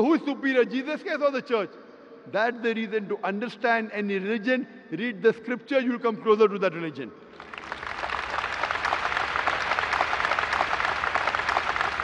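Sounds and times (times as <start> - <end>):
large audience applauding: 7.3 - 12.0.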